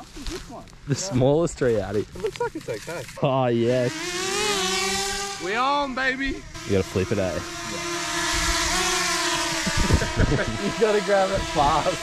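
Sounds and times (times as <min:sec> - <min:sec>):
drone propellers buzzing: 0:02.0 - 0:12.0.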